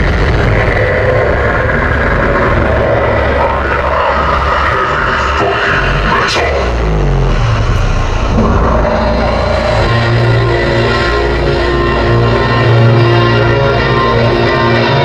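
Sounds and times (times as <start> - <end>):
deep rumbling drone: 0.0 - 15.0
falling whoosh: 7.3 - 13.2.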